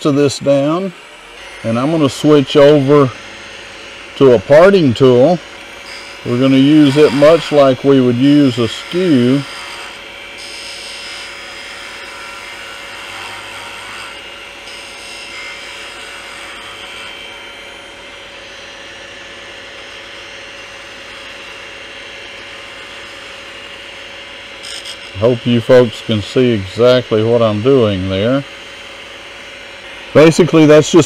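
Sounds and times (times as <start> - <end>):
tool cutting wood: 0.0 - 31.0
wood lathe motor hum: 0.0 - 31.0.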